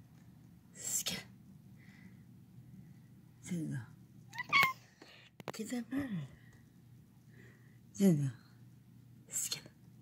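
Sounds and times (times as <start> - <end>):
cat meowing: 4.3 - 4.8.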